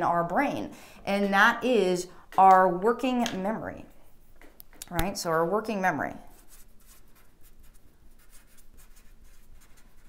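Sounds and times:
marker pen writing: 6.3s - 10.0s.

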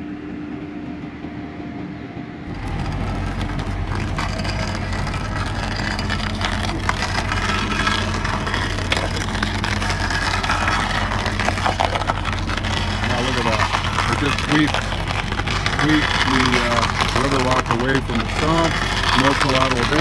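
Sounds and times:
stump grinder droning: 2.5s - 20.0s
wood chipping crackle: 2.5s - 20.0s.

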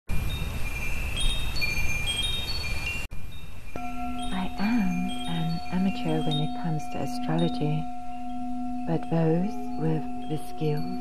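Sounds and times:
wind chimes ringing: 0.1s - 11.0s
low steady tone: 3.2s - 11.0s.

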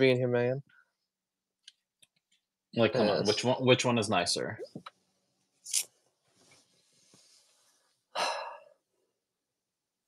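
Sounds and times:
person exhaling: 8.2s - 8.8s.

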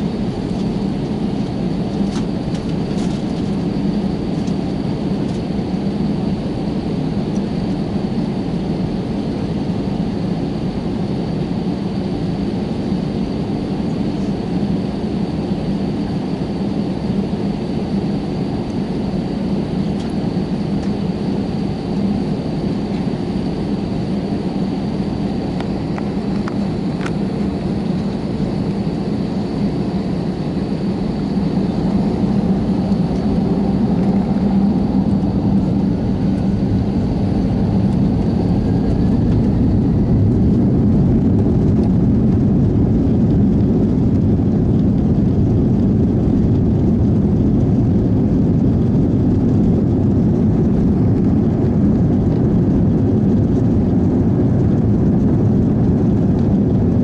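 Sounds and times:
jet engines drone in cabin: 0.0s - 57.0s.

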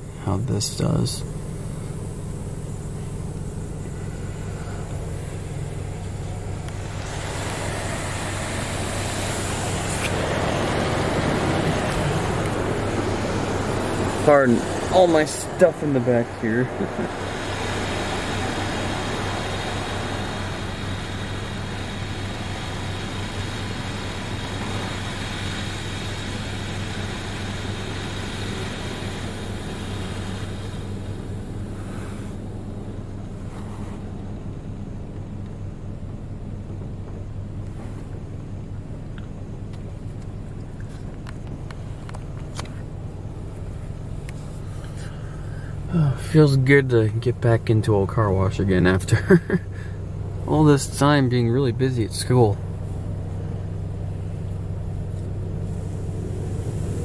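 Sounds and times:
steady low hum: 0.0s - 57.0s
water spray hitting car: 2.0s - 34.4s, 52.8s - 57.0s.

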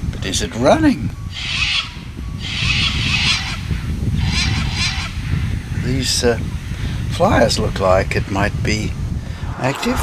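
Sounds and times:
birds screeching: 1.2s - 6.8s
low rumble: 9.2s - 10.0s.

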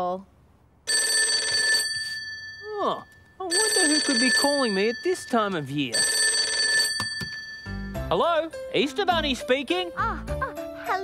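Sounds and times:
telephone bell ringing: 0.9s - 8.1s
low background music: 7.4s - 11.0s.

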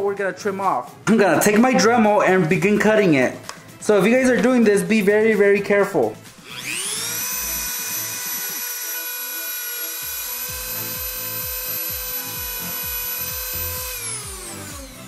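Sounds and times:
rotary tool whining: 6.4s - 15.0s.

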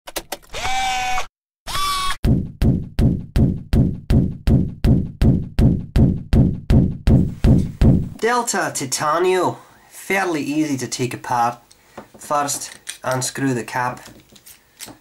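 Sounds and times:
regular thuds: 2.2s - 8.2s.

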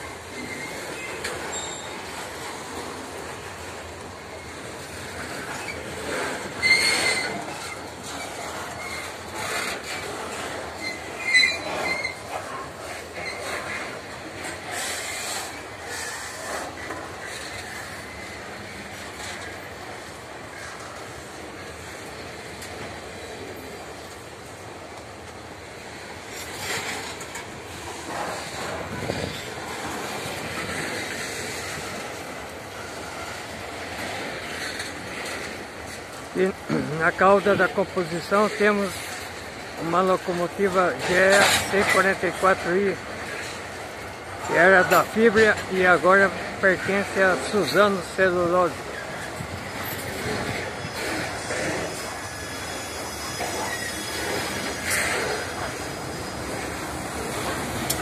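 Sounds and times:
freight train rolling rumble: 0.0s - 58.0s
high-pitched wheel squeal: 0.4s - 2.1s, 5.5s - 7.8s, 10.7s - 12.3s, 48.9s - 57.8s.

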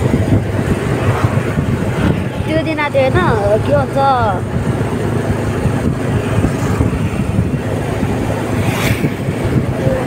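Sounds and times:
vehicle engine and road rumble: 0.0s - 10.0s.

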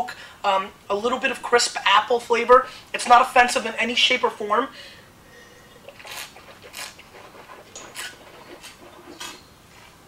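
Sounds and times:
hissy slurps of wine: 5.3s - 10.0s.

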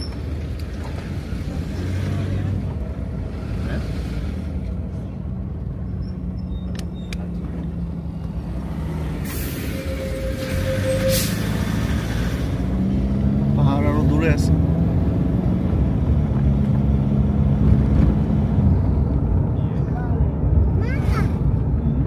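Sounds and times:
wind and road noise: 0.0s - 22.0s
truck whooshing past: 7.9s - 19.2s.

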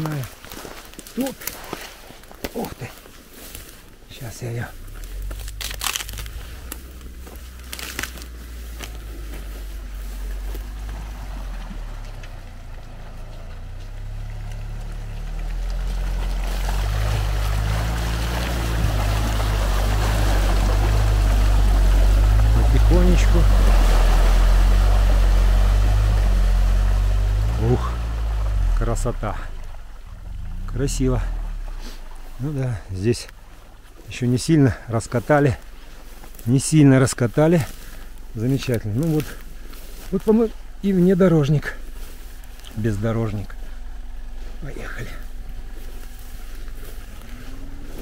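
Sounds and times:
water and mud splashing: 0.0s - 48.0s
atv engine working under load: 4.8s - 32.6s.

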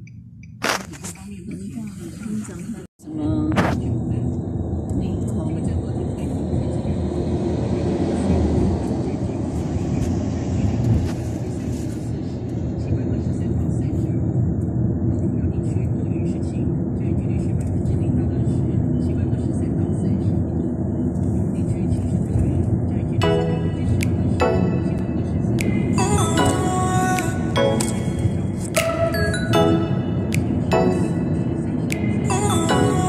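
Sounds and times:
road and engine noise inside vehicle: 0.0s - 33.0s.

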